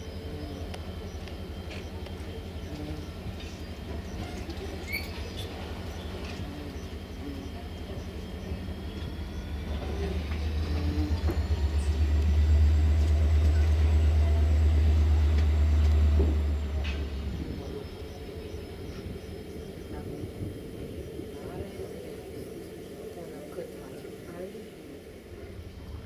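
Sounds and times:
diesel locomotive engine rumbling: 0.0 - 26.0.

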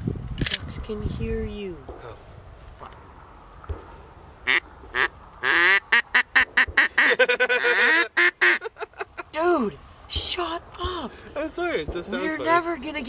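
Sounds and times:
duck call quacks: 4.5 - 8.7.

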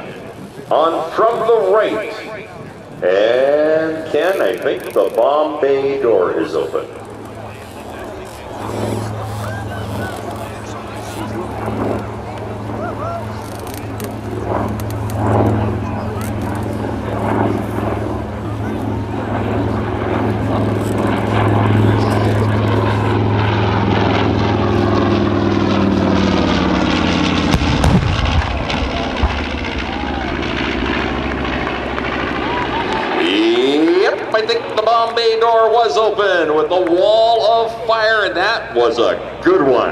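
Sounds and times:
propeller plane engines droning: 0.0 - 39.9
explosion crack and rumble: 27.4 - 33.0.

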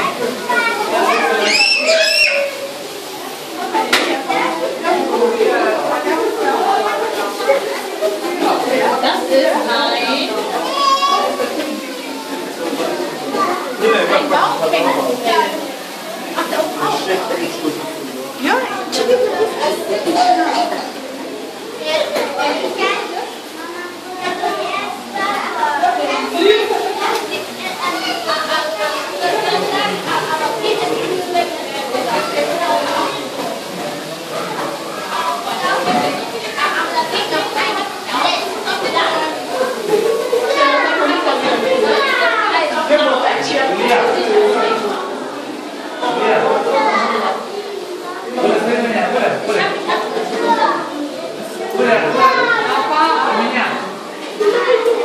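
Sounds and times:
children calling out: 0.0 - 3.8, 10.3 - 14.0, 18.7 - 33.7, 34.3 - 42.9, 49.8 - 53.5, 54.1 - 55.0
crowd chattering: 0.0 - 55.0.

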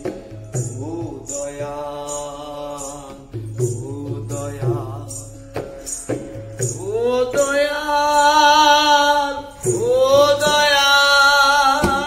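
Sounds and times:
jingling percussion strokes: 0.0 - 12.0.

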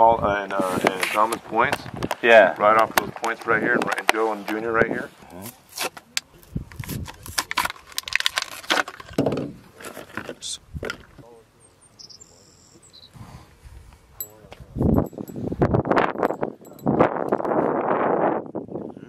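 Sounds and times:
fishing tackle clicking and rattling: 15.0 - 17.4.

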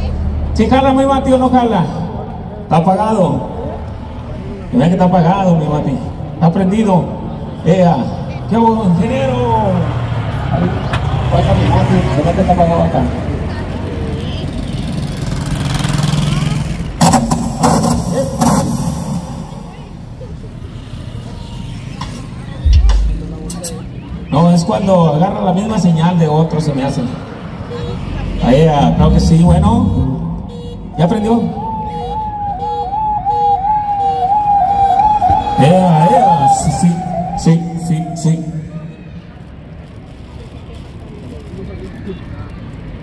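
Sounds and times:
car passing: 0.0 - 43.0
truck passing: 0.0 - 43.0
police siren yelping: 30.9 - 39.0.

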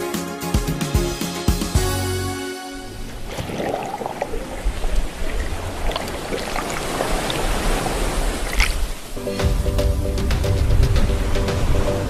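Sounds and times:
music with heavy bass: 0.0 - 2.8, 9.2 - 12.0.

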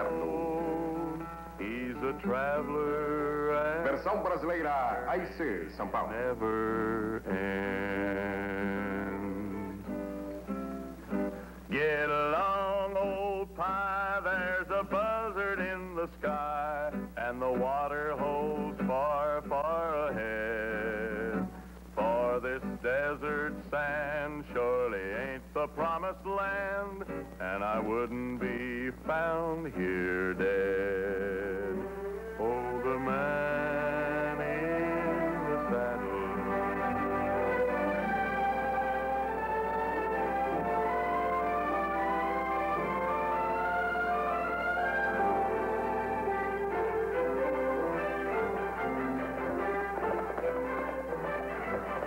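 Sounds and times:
man singing a slow ballad: 0.0 - 4.1, 11.7 - 36.7
instrumental accompaniment: 27.1 - 52.0
orchestral brass music: 31.8 - 52.0.

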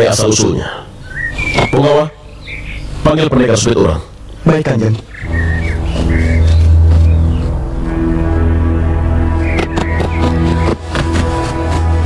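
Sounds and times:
short high notes: 5.2 - 10.8
sustained low drone: 5.2 - 12.0.

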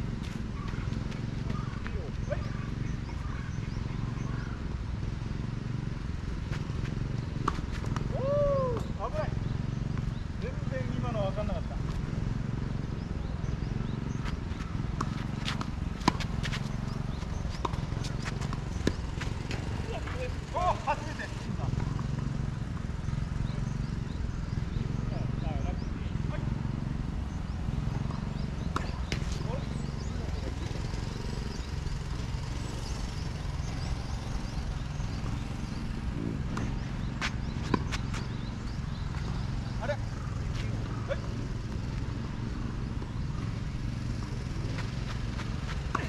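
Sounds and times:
distant tennis ball strikes: 6.5 - 8.9, 14.2 - 20.2, 27.9 - 29.7, 35.1 - 42.1, 44.1 - 46.0.

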